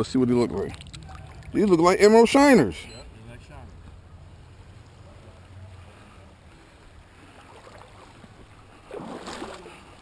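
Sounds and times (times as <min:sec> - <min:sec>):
shallow creek water flowing: 0:00.0 - 0:02.8, 0:03.6 - 0:10.0.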